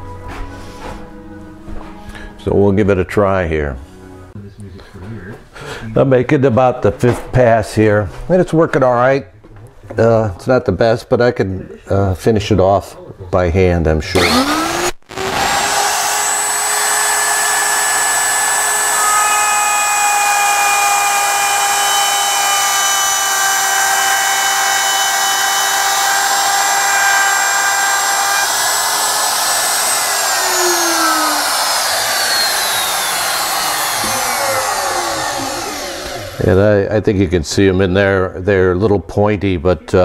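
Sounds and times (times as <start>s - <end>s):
router cutting wood: 14.1s - 36.6s
router motor spinning down: 14.2s - 36.6s.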